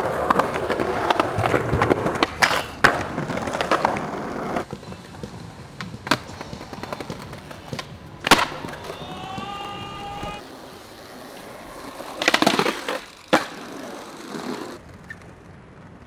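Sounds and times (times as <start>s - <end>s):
skateboard clattering: 0.0s - 15.8s
skateboard clack: 0.0s - 15.9s
skateboard wheels rolling on concrete: 0.0s - 16.0s.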